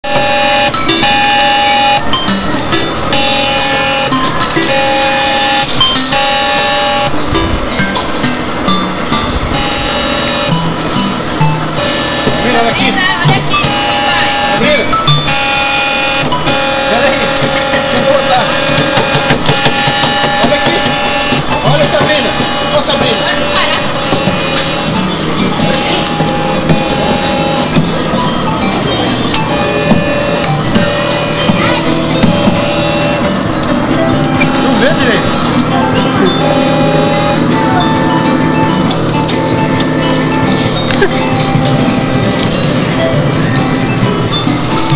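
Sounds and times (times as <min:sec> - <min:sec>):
electronic ride melody: 0:00.0 - 0:44.9.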